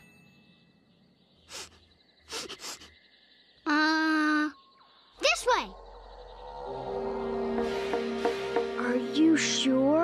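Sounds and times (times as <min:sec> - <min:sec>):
cartoon creature sniffing: 0:01.5 - 0:02.9.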